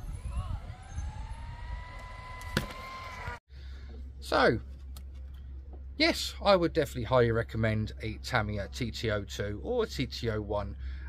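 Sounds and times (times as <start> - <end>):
electric motor whining: 0.0 - 3.4.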